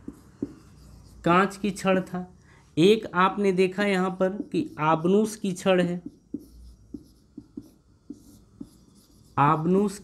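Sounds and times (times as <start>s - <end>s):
marker writing on whiteboard: 0.0s - 2.0s, 3.0s - 10.0s.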